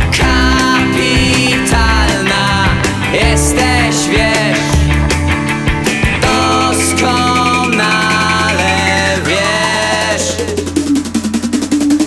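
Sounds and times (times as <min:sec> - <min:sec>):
alternative rock music: 0:00.0 - 0:12.0.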